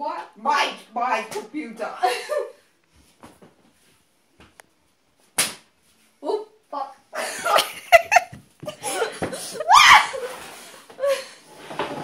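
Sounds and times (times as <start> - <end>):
hearty laughter: 7.2 - 9.7.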